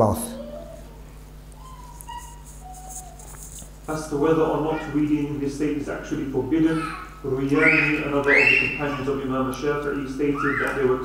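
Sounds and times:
steady low hum: 0.0s - 11.0s
faint whistle-like tones: 7.6s - 8.9s.

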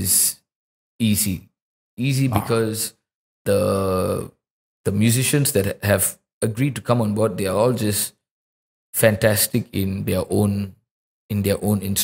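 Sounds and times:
man speaking: 0.0s - 0.4s, 1.0s - 8.1s, 9.0s - 12.0s.

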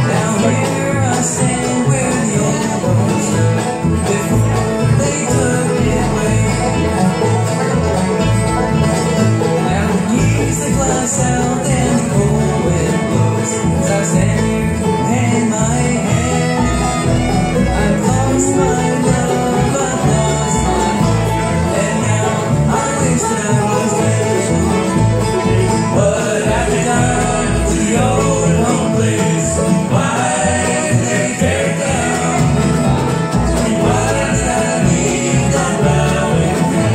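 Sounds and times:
acoustic guitars: 0.0s - 36.9s
banjo: 0.0s - 36.9s
fiddle: 0.0s - 36.9s
upright bass: 0.0s - 36.9s.

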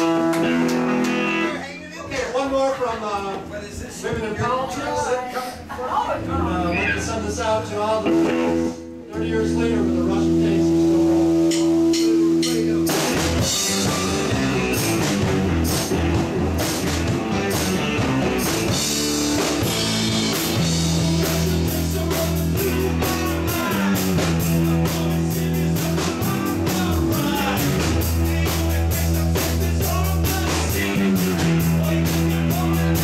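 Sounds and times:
rock band playing power pop: 0.0s - 4.7s, 5.4s - 33.0s.

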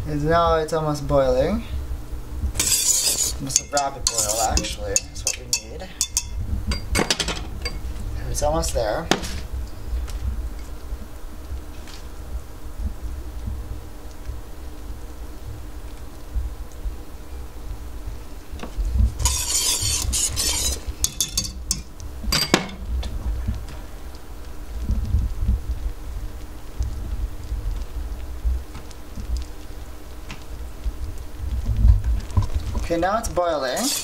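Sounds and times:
utensil clinking against pot: 2.6s - 7.9s, 19.2s - 22.8s, 33.8s - 34.0s
utensil scraping inside a pot: 2.6s - 8.0s, 19.1s - 22.5s, 32.6s - 34.0s.

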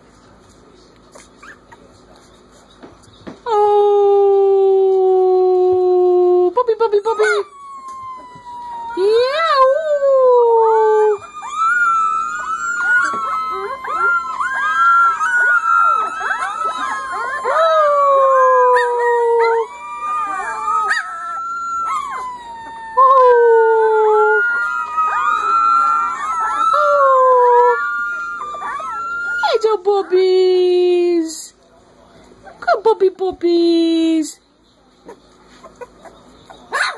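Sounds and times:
puppies howling in chorus: 7.1s - 31.0s.

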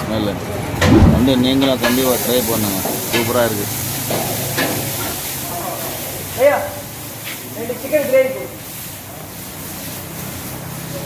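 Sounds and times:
people talking: 0.0s - 3.7s
low thump: 0.8s - 1.8s
food sizzling on griddle: 1.6s - 11.0s.

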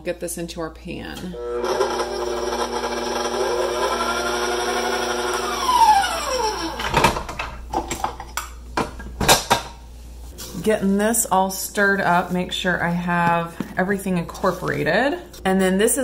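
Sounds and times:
mixer motor spinning down: 1.3s - 7.0s
stand mixer running: 1.4s - 6.9s.

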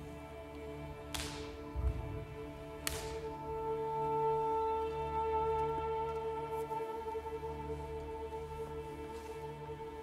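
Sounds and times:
sustained orchestral notes: 0.0s - 10.0s
whip-like cracks: 1.1s - 1.6s, 2.8s - 3.3s.

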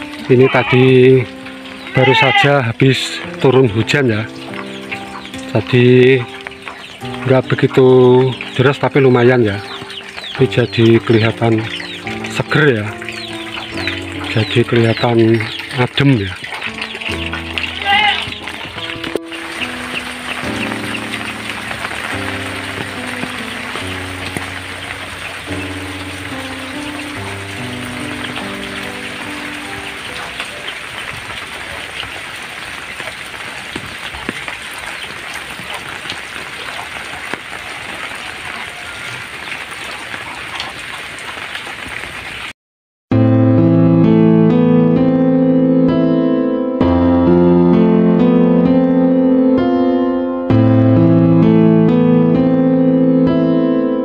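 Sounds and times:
soft music: 0.0s - 32.2s, 43.1s - 54.0s
piano music: 0.0s - 39.2s, 43.1s - 54.0s
rain falling: 0.0s - 42.5s.

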